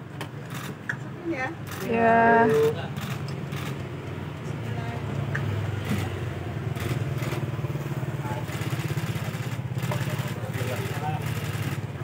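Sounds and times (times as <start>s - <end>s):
people chattering: 0.3s - 12.0s
engine running with pulsing rumble: 5.6s - 12.0s.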